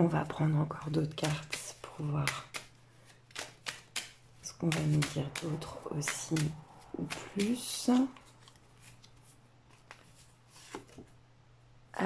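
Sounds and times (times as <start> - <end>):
cards rustling and clicking: 1.2 - 11.2.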